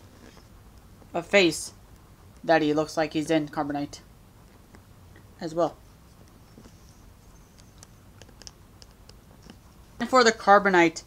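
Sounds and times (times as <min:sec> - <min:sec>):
small plastic parts clicking: 0:07.5 - 0:09.6.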